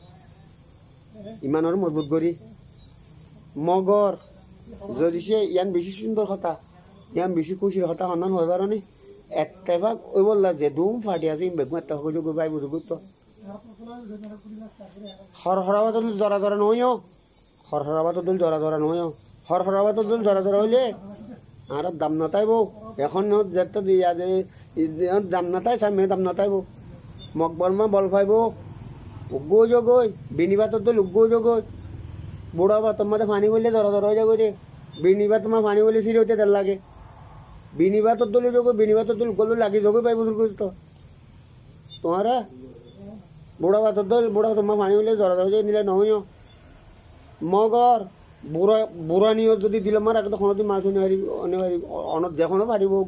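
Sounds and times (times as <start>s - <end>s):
night insects chirping: 0.0s - 53.0s
man talking: 1.4s - 2.4s, 4.9s - 13.1s, 17.7s - 26.7s, 29.3s - 31.7s, 32.6s - 36.8s, 37.8s - 40.8s, 42.0s - 42.9s, 43.6s - 46.3s, 47.4s - 53.0s.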